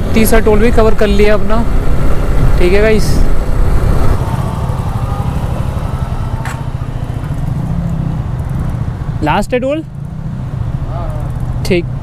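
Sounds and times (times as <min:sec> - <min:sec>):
wind rumble on microphone: 0:00.0 - 0:09.1
motorcycle engine running: 0:01.7 - 0:09.2.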